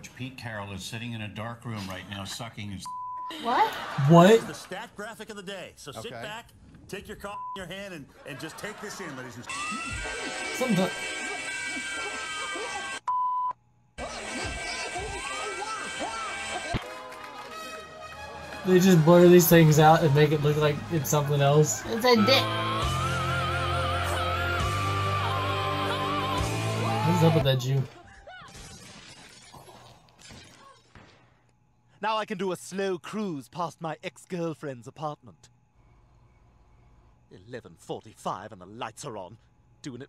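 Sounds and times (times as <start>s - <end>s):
voices from tv show: 0.0s - 13.2s, 14.0s - 28.9s, 29.6s - 40.0s.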